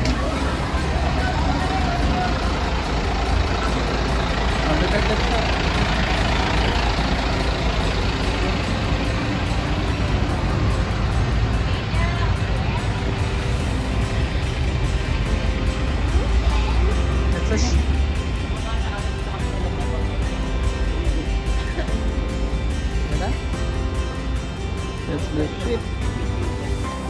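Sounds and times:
voices: 0:00.0 - 0:22.0
diesel truck engine rumbling: 0:00.0 - 0:27.0.

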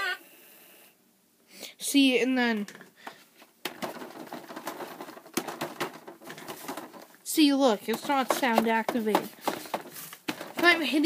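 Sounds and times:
hand tapping plastic prop: 0:07.9 - 0:10.8.

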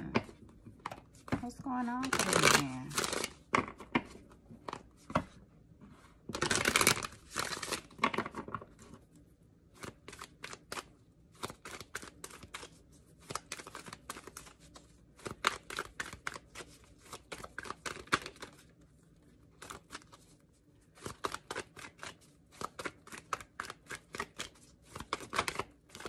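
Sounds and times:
cards being shuffled by hand: 0:00.0 - 0:05.4, 0:06.3 - 0:09.1, 0:09.7 - 0:26.0.

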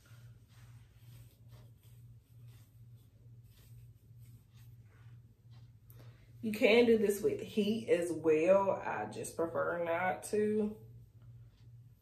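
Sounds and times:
comb scratching through hair: 0:00.0 - 0:12.0.

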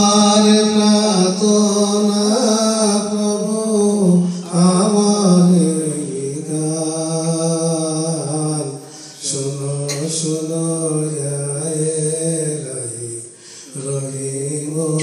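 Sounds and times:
man singing devotional song: 0:00.0 - 0:15.0.

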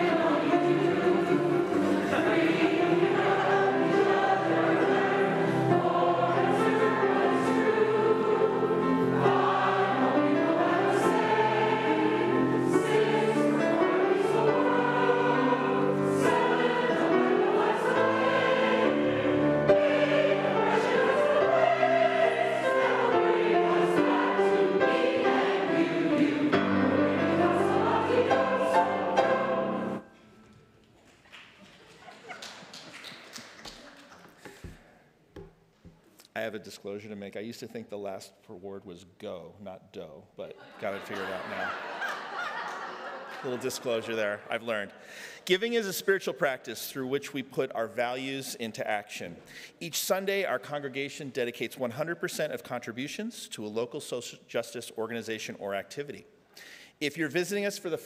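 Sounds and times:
congregation singing: 0:00.0 - 0:30.4, 0:40.8 - 0:45.2.

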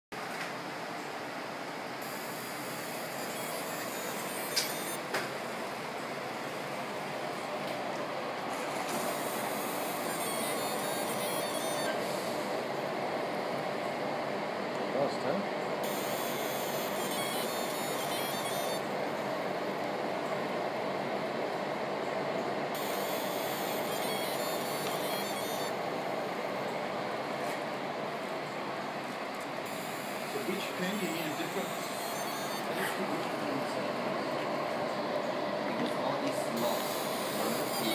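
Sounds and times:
laser engraver fan whir: 0:00.6 - 0:37.9.

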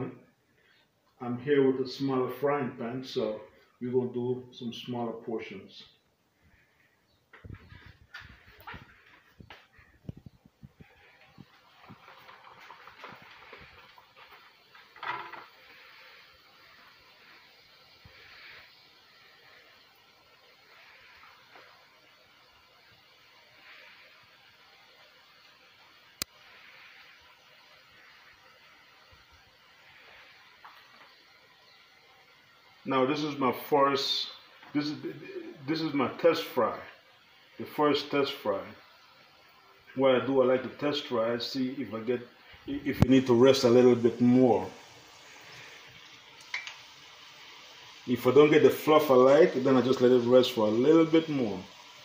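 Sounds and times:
dough sizzling in hot oil: 0:05.8 - 0:52.0.

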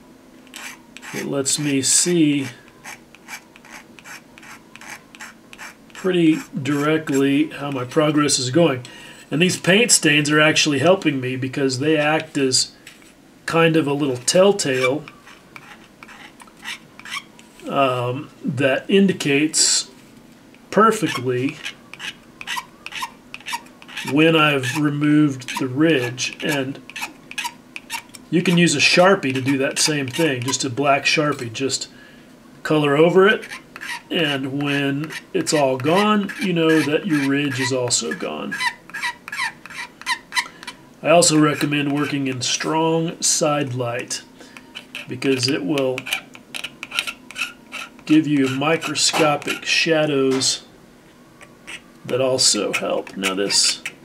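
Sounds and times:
blade scraping plastic: 0:00.5 - 0:01.7, 0:02.7 - 0:07.2, 0:14.2 - 0:17.6, 0:20.9 - 0:24.8, 0:33.4 - 0:42.7, 0:44.6 - 0:50.5, 0:51.4 - 0:54.0.

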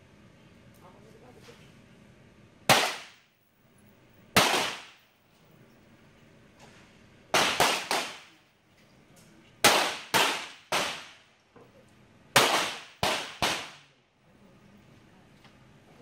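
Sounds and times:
pistol shots cracking: 0:02.7 - 0:03.2, 0:04.4 - 0:05.0, 0:07.3 - 0:08.3, 0:09.6 - 0:11.2, 0:12.4 - 0:13.8.

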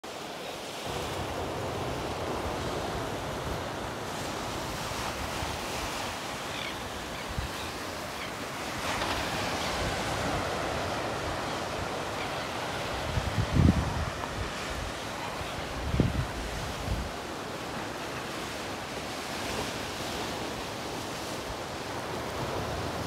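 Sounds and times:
surf and waves: 0:00.0 - 0:23.0
wind buffeting microphone: 0:09.2 - 0:15.0, 0:15.6 - 0:17.2.

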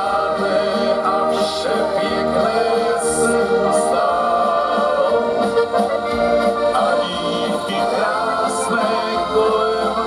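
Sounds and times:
accordions playing: 0:00.0 - 0:10.0
keyboard playing: 0:00.0 - 0:10.0
voices singing in harmony: 0:00.0 - 0:10.0.

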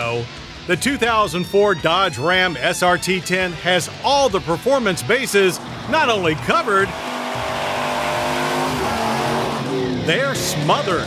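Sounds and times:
engine at high revs: 0:05.2 - 0:11.0
tyres spinning: 0:05.3 - 0:09.8.

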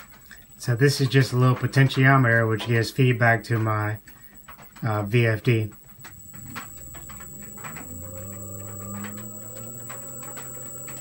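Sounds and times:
constant high-pitched whine: 0:00.0 - 0:11.0
electric motor hum rising in pitch: 0:06.0 - 0:11.0.

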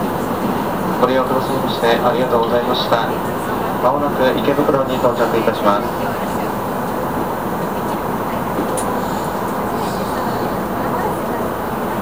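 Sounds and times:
train rumbling on rails: 0:00.0 - 0:12.0.

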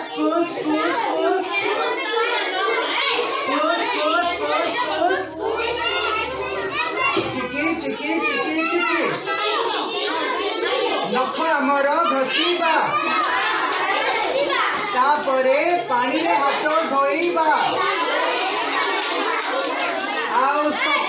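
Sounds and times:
children chattering and calling out: 0:00.0 - 0:21.0.

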